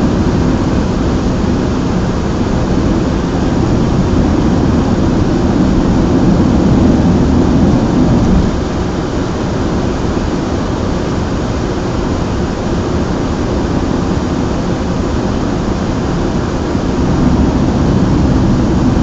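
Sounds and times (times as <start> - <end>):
road and engine rumble in car: 15.1 - 19.0.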